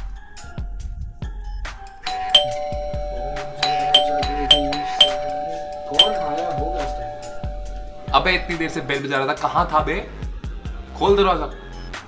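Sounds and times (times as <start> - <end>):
doorbell chiming: 2.0 - 9.2.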